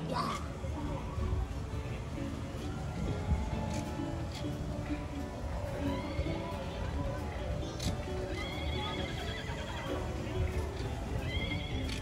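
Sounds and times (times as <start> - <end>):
background music: 0.0 - 12.0
horse whinny: 8.3 - 10.0.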